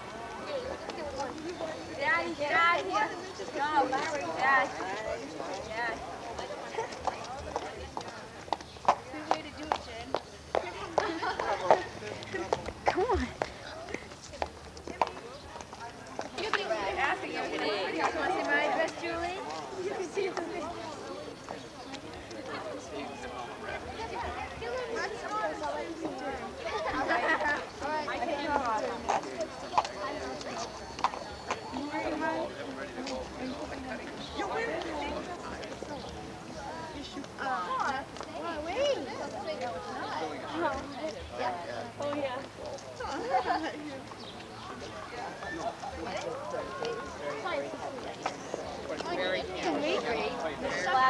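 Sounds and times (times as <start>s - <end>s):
hard-soled footsteps on pavement: 0.0s - 51.0s
low chatter of voices: 0.0s - 51.0s.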